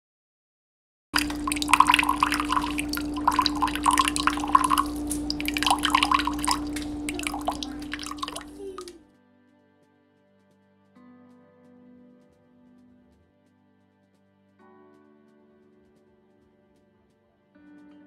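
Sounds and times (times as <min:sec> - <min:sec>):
steady hum: 0:01.2 - 0:09.0
water drips and splashes: 0:01.2 - 0:09.0.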